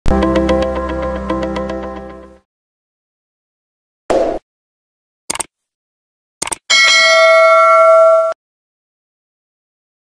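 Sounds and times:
notification bell chime: 0:06.7 - 0:08.4.

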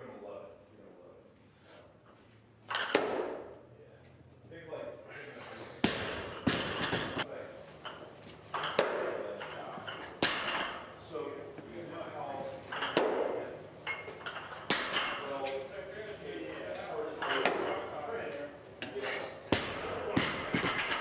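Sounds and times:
plates rattling and clattering: 0:06.2 - 0:07.2, 0:13.8 - 0:15.2, 0:20.3 - 0:21.0.

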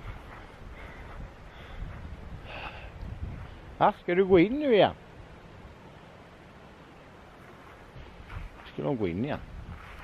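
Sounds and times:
man breathing: 0:00.0 - 0:03.0
wind rumbling on microphone: 0:00.0 - 0:05.8, 0:07.3 - 0:10.0.

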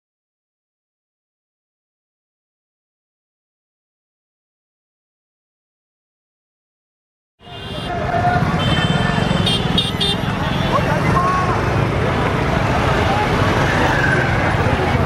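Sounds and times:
crowd voices babbling: 0:07.4 - 0:15.0
motor traffic: 0:07.4 - 0:15.0.

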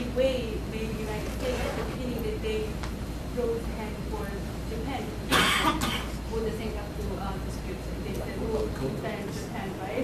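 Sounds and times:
person coughing: 0:05.3 - 0:06.2.

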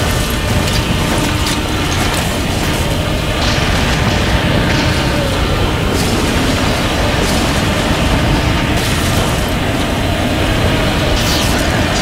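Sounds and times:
rattling and clicking debris: 0:00.0 - 0:12.0
rumble of destruction: 0:00.0 - 0:12.0.

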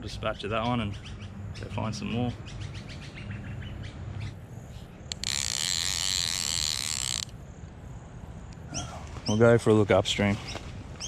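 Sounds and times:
birds chirping faintly: 0:00.0 - 0:11.0
high-pitched insect buzz: 0:04.7 - 0:07.6.

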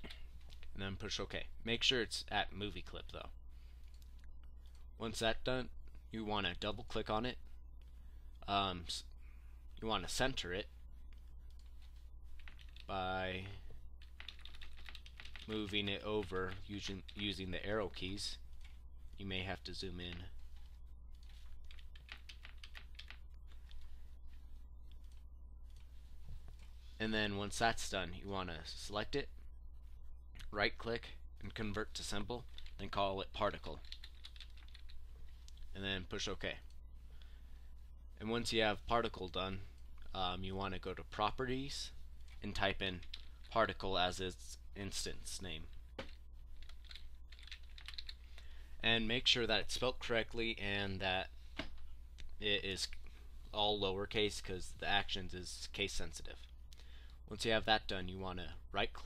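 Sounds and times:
steady low hum: 0:00.0 - 0:59.0
computer keyboard keys tapping: 0:11.2 - 0:12.9, 0:14.0 - 0:17.2, 0:20.1 - 0:23.9, 0:32.5 - 0:32.8, 0:33.7 - 0:35.0, 0:43.0 - 0:43.4, 0:46.0 - 0:48.2.

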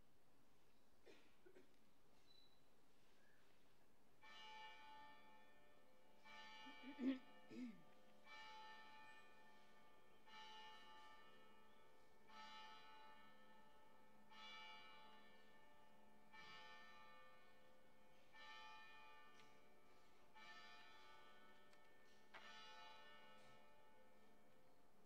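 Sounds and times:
church bell tolling: 0:04.2 - 0:24.6.

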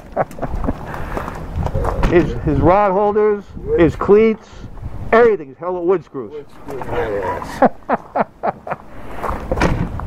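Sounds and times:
person laughing: 0:00.0 - 0:01.2, 0:07.4 - 0:08.9.

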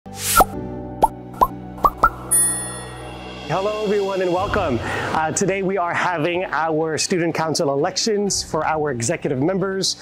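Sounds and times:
pops gliding upward in pitch: 0:00.2 - 0:03.0
held chord: 0:02.2 - 0:04.0.

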